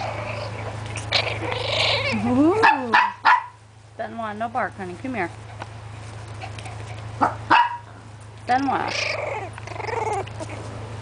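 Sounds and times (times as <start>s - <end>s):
puppy yipping: 7.2s - 7.9s, 8.9s - 10.7s.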